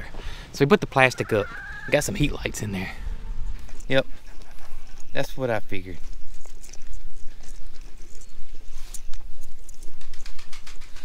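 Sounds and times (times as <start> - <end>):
wind buffeting microphone: 1.8 - 5.0
toy clicking and rustling in grass: 3.6 - 11.0.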